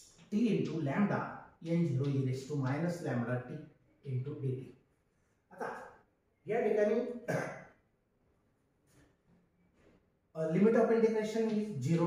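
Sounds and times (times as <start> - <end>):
man clearing his throat: 7.3 - 7.7.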